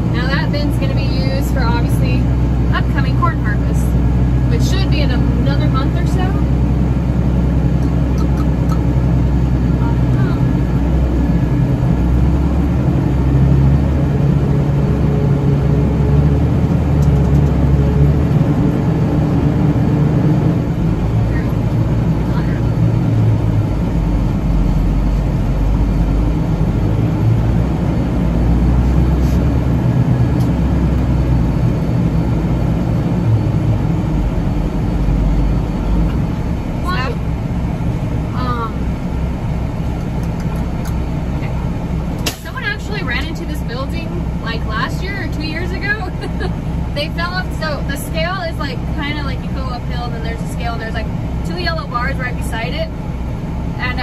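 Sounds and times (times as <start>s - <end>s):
diesel truck engine rumble: 0.0s - 54.0s.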